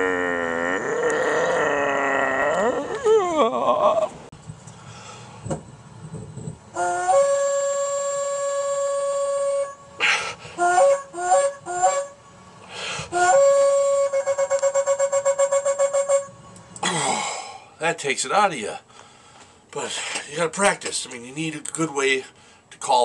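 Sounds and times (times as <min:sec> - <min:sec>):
sharp breaths: 0:04.8 - 0:05.4, 0:12.6 - 0:13.2, 0:18.9 - 0:20.3, 0:22.3 - 0:22.7
horn blown by mouth: 0:06.7 - 0:16.7.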